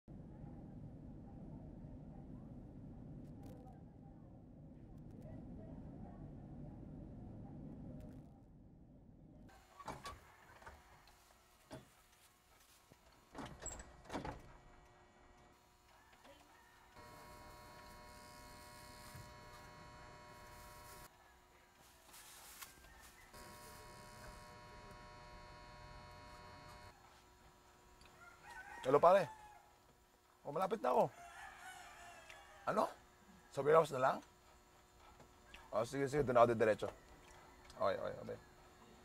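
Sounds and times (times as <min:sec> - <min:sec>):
phone buzzing on vibrate: 0:17.0 - 0:21.1, 0:23.3 - 0:27.0.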